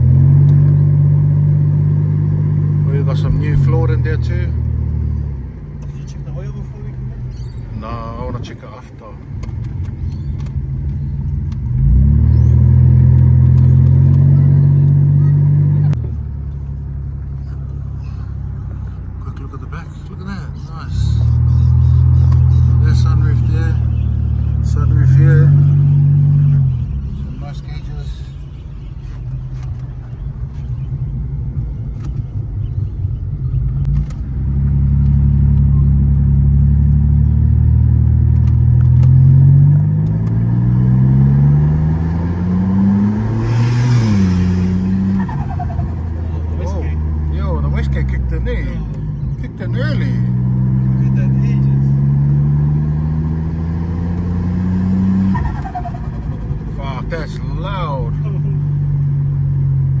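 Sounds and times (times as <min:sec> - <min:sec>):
turbocharged car engine accelerating: 0:00.0 - 0:28.6, 0:29.2 - 1:00.0.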